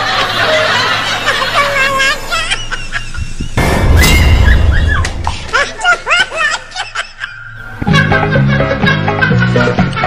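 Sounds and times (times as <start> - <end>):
high-pitched laughter: 0.0 - 10.0.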